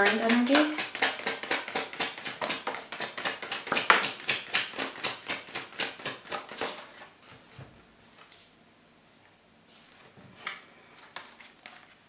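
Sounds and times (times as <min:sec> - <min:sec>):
cards being shuffled: 0:00.0 - 0:07.5.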